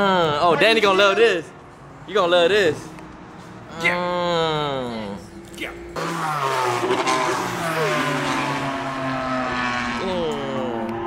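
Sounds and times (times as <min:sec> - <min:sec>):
car engine passing: 0:00.6 - 0:11.0.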